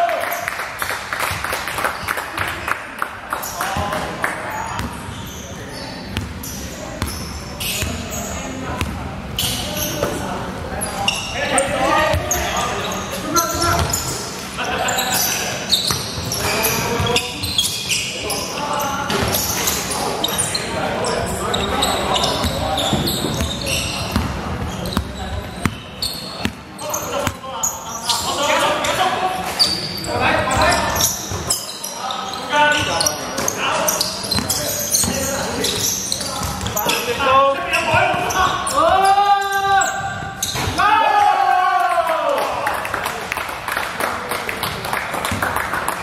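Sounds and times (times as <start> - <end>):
short squeaks: 14.9 - 37.1, 38.2 - 40.8.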